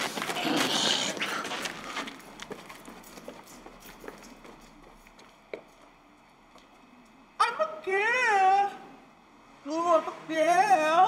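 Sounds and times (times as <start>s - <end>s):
running footsteps on concrete: 0.0s - 6.8s.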